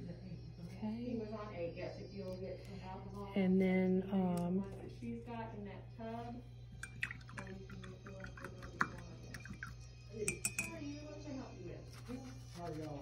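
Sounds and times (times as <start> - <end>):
containers clinking: 6.8 - 10.8.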